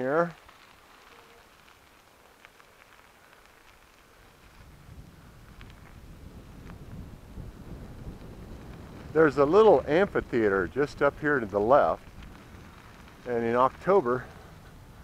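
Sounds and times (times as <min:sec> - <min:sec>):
bicycle tyres crunching on gravel: 0:00.0 - 0:15.0
faint clicks: 0:00.2 - 0:07.0, 0:11.5 - 0:14.8
wind rumble on microphone: 0:03.6 - 0:15.0.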